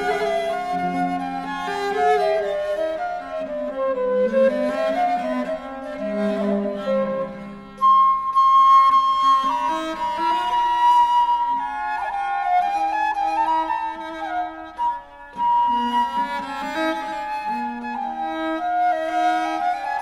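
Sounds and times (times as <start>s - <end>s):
viola da gamba and theorbo: 0.0s - 20.0s
wooden flute melody: 0.0s - 20.0s.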